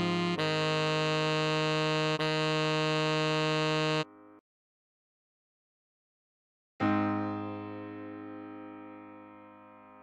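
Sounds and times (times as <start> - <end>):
tenor saxophone melody: 0.0 - 4.1.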